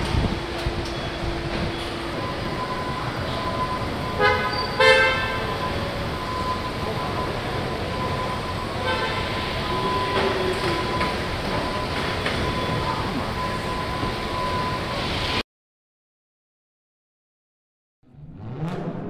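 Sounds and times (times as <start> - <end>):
machinery hum: 0.0 - 15.4
horn toots: 4.2 - 5.6, 8.8 - 9.6.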